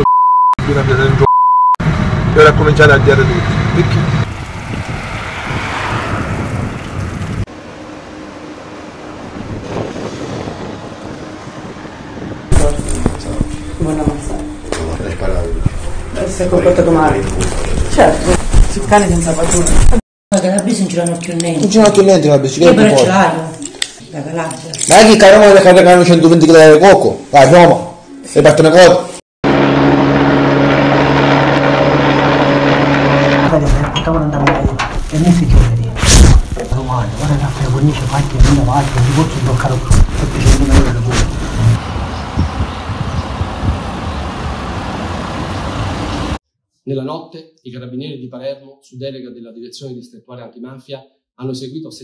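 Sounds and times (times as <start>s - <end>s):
street noise: 1.8s - 19.9s, 29.5s - 46.4s
car driving past: 2.4s - 9.4s
wind on microphone: 4.2s - 7.5s, 9.1s - 14.4s, 33.4s - 46.4s.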